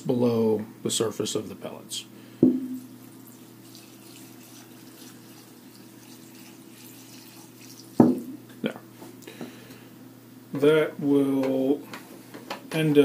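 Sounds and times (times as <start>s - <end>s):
liquid trickling: 2.8s - 8.3s
can thumping down: 8.0s - 8.4s.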